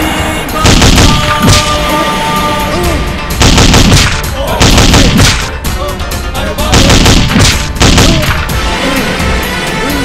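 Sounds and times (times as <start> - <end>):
film background music: 0.0 - 10.0
rifle automatic bursts: 3.4 - 5.5, 6.7 - 8.3.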